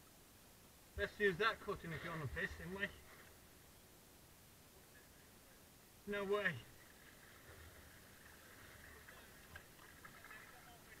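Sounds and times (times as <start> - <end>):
faint water around kayak: 0.0 - 11.0.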